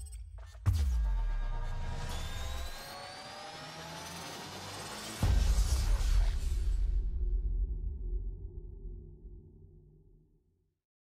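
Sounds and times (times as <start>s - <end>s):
synthesized rising whine: 1.7s - 6.2s.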